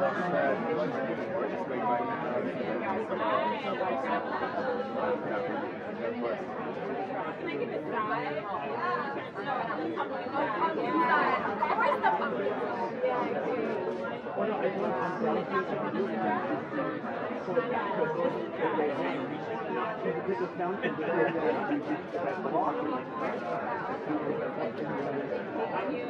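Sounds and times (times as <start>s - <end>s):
hubbub of overlapping conversation: 0.0s - 26.0s.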